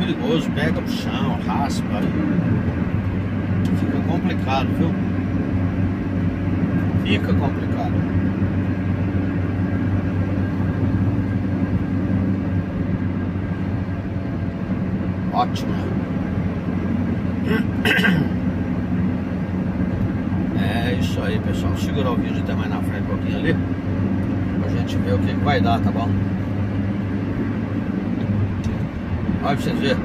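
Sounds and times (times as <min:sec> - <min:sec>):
engine and tyre drone: 0:00.0 - 0:30.0.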